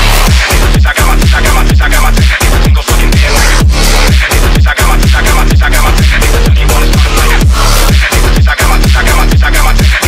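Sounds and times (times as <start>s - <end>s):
distorted sliding bass notes: 0.0s - 10.0s
electronic phonk music: 0.0s - 10.0s.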